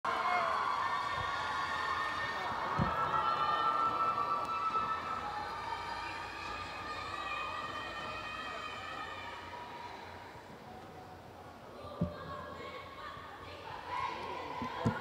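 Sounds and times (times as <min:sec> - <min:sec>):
crowd cheering: 0:00.0 - 0:10.2.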